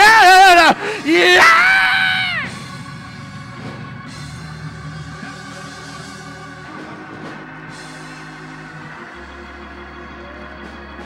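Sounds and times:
preacher shouting into microphone: 0.0 - 2.5
church music sustained chords: 0.0 - 11.0.

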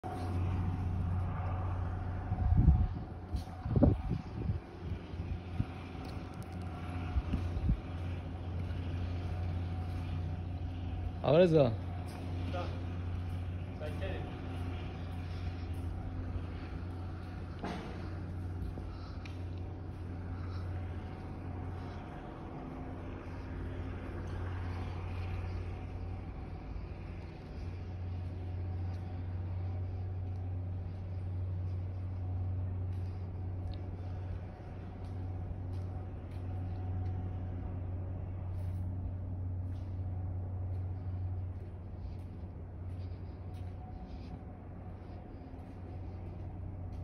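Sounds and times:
faint motor tones: 0.0 - 47.0
steady low hum: 0.0 - 47.0.

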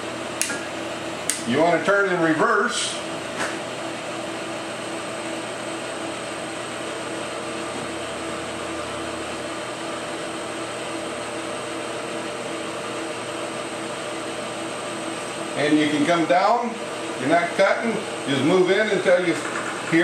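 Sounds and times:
milling machine spindle whir: 0.3 - 20.0.

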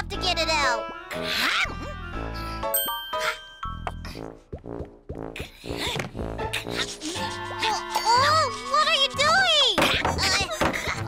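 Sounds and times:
cartoon background music: 0.0 - 11.0
bright chime: 2.8 - 4.3.

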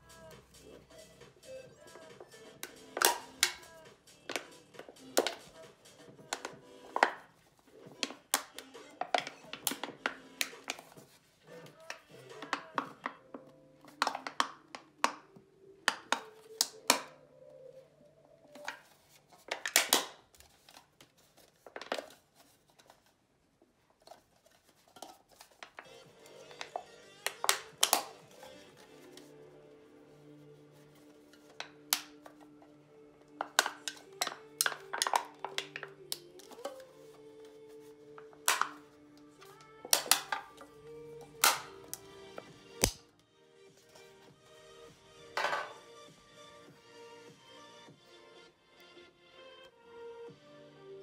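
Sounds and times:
background music: 0.0 - 22.0, 25.3 - 51.0
soda can crinkling: 13.9 - 15.2, 18.5 - 23.1, 24.0 - 29.3, 33.3 - 37.0, 38.2 - 40.7, 41.3 - 43.1.

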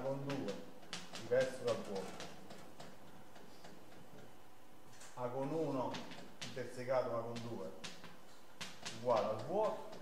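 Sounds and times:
chalk tapping and scratching: 0.0 - 4.4, 5.4 - 10.0.

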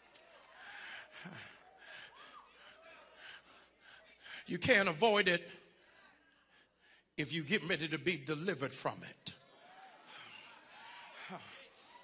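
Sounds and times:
breath near microphone: 0.5 - 4.5, 5.7 - 7.2.

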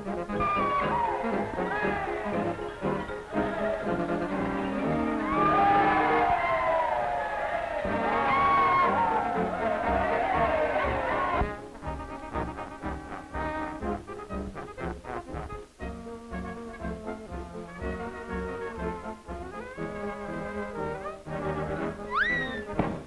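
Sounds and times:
orchestral brass cartoon music: 0.0 - 23.0
crowd yelling: 0.3 - 11.5.

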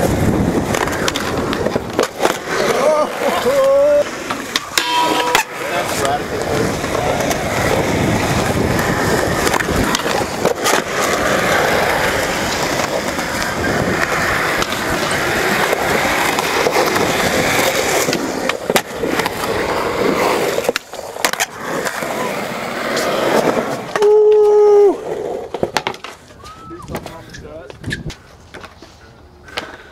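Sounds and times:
skateboard wheels rolling on concrete: 0.0 - 29.9
skateboards popping and landing: 0.0 - 29.9.

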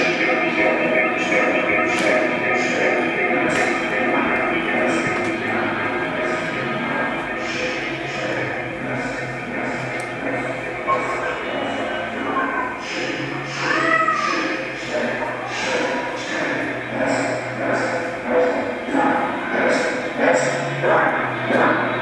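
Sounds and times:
music over loudspeakers: 0.0 - 22.0
voices over loudspeakers: 0.0 - 22.0.

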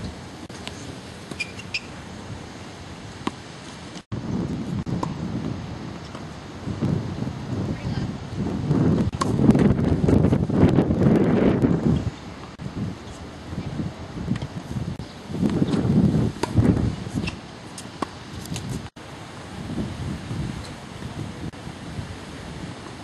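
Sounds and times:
wind buffeting microphone: 4.1 - 17.5, 18.2 - 23.0.

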